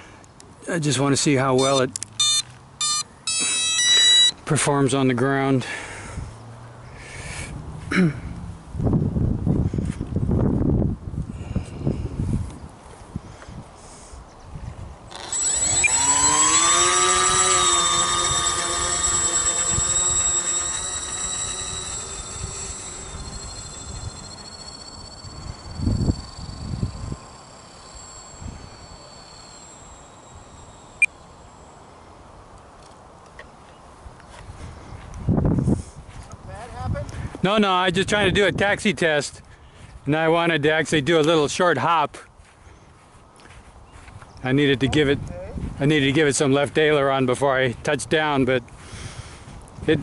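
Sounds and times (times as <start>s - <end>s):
electric motor and propeller whining: 1.6s - 4.4s, 15.0s - 33.0s.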